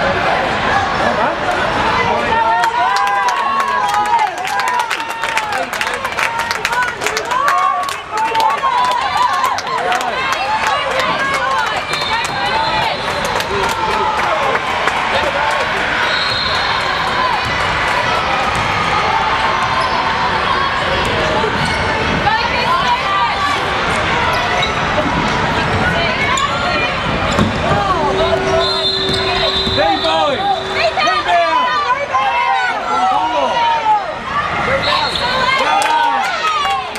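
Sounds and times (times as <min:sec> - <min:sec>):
echoing voices: 0:16.8 - 0:35.6.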